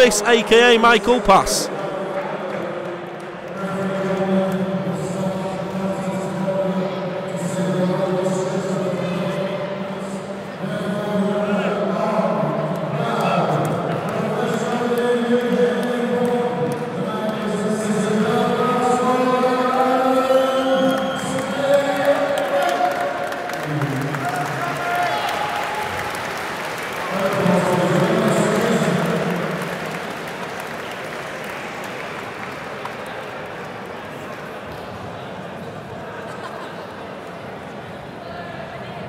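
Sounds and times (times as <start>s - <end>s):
announcer's voice over pa system: 0.0s - 1.7s.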